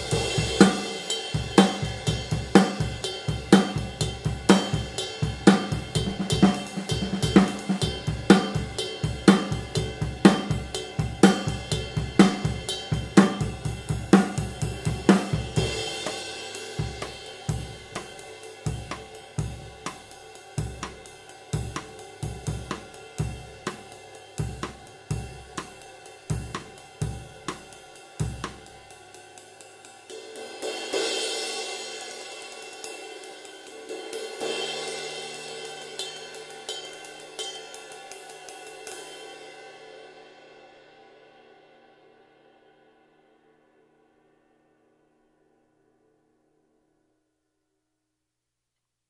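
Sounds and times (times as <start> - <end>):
ride cymbal played with stick: 0.0 - 42.9.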